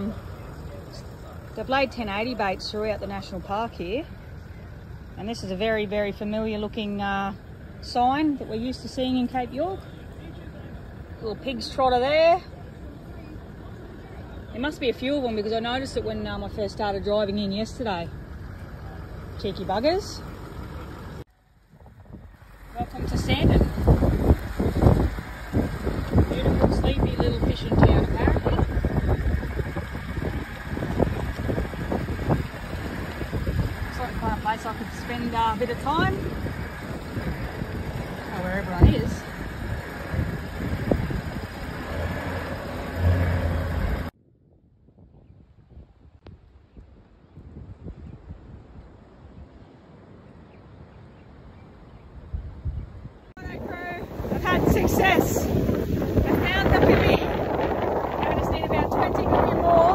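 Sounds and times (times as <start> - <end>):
engine and road rumble: 0.0 - 44.3, 44.9 - 59.9
woman's voice: 1.6 - 4.1, 5.2 - 9.8, 11.2 - 12.5, 14.5 - 18.1, 19.4 - 20.3, 22.8 - 23.9, 26.2 - 28.8, 33.9 - 36.3, 38.2 - 39.4, 53.4 - 55.6, 56.2 - 57.5, 58.1 - 59.9
wind on microphone: 21.7 - 49.7, 52.0 - 59.9.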